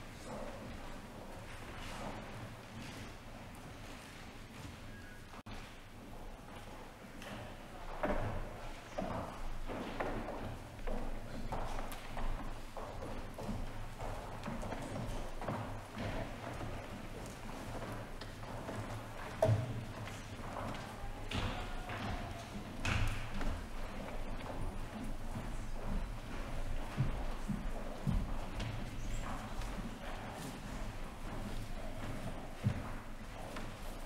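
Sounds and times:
footsteps on tiled floor: 8.0 - 34.0.

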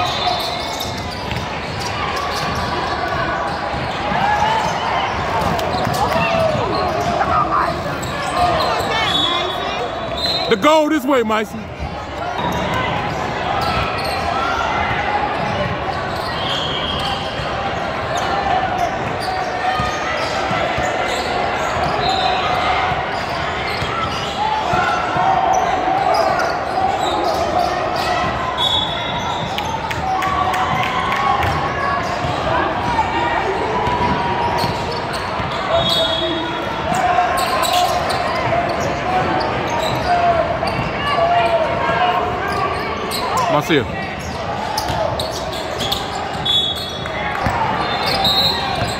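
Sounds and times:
voices echoing in hall: 0.0 - 48.9.

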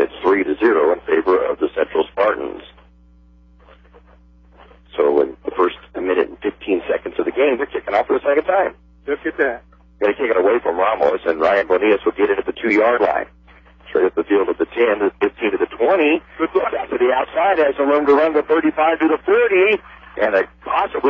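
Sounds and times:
radio commentators talking: 0.0 - 21.0
steady low hum: 0.0 - 21.0.

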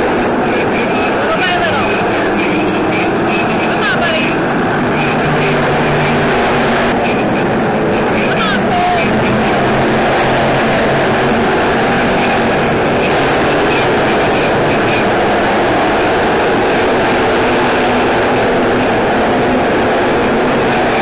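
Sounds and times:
race car engines racing: 0.0 - 21.0.

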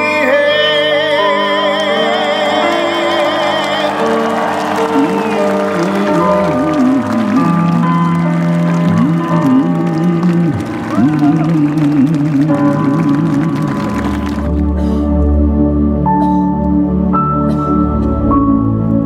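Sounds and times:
man singing slow song: 0.0 - 14.4
band playing held chords: 1.4 - 18.6.

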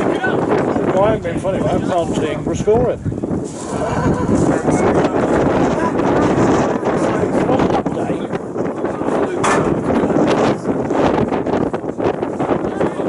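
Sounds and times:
indistinct voices talking: 0.0 - 13.0
wind buffeting microphone: 0.0 - 13.0.

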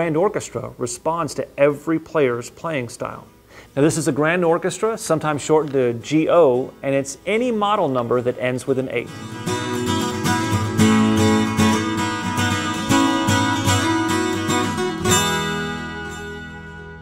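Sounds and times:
acoustic guitar picked and strummed: 8.4 - 17.0.

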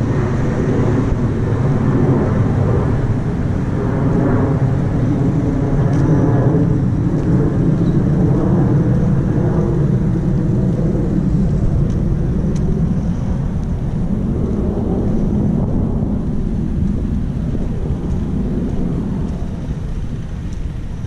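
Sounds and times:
low rumble of road traffic: 0.0 - 21.0
faint ticks: 20.4 - 20.8.

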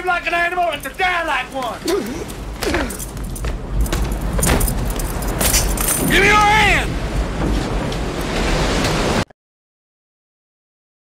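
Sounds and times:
rumble of wind and water: 0.0 - 9.3
rain and spray lashing: 0.1 - 9.3.

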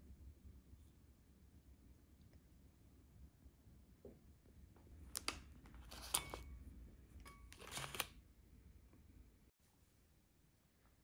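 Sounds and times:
plastic wrappers crinkling: 7.5 - 8.2.

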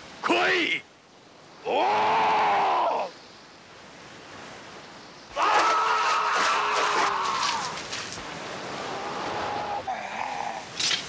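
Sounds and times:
low surf: 0.0 - 10.8
wind: 0.0 - 11.0.

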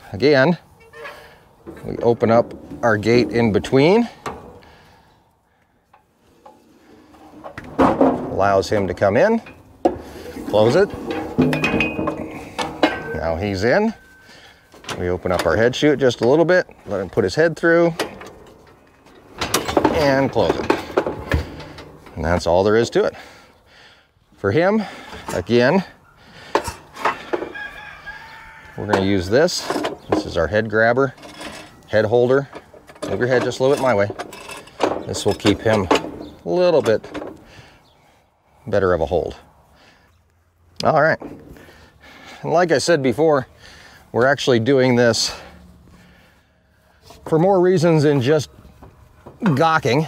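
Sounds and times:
metal gate scraping: 0.8 - 4.9, 6.3 - 23.1, 24.9 - 37.4
sharp metal clank: 11.0 - 13.4
farm bird long call: 27.2 - 28.8.

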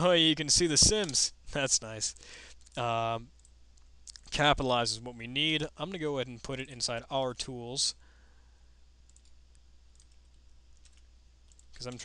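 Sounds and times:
low steady hum: 0.0 - 12.0
computer mouse clicks: 9.1 - 12.0.

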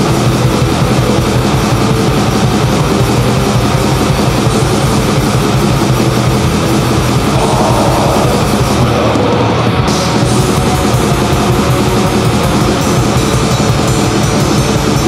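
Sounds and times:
distorted guitars: 0.0 - 15.0
fast drumming: 0.0 - 15.0.

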